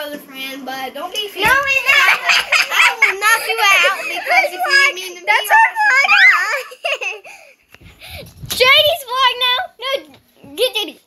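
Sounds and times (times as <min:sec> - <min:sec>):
children laughing: 0:01.4 - 0:07.7.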